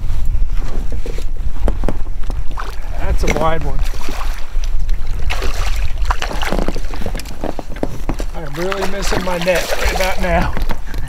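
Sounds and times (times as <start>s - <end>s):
wind rumble on microphone: 0.0s - 11.0s
fish splashing in water: 2.5s - 10.6s.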